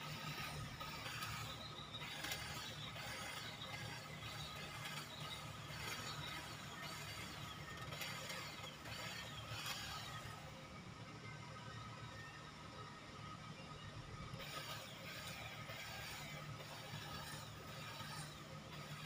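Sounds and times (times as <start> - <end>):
electric hedge trimmer running: 0.0 - 10.5, 14.4 - 19.0.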